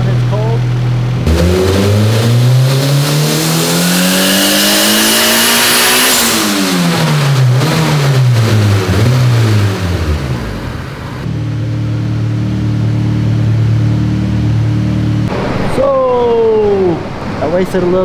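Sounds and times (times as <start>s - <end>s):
high turbo whine: 0.0s - 18.0s
car engine revving on dyno: 1.1s - 15.5s.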